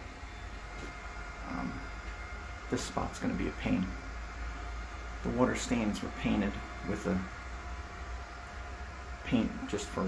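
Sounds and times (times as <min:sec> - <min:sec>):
air conditioner hum: 0:00.0 - 0:10.0.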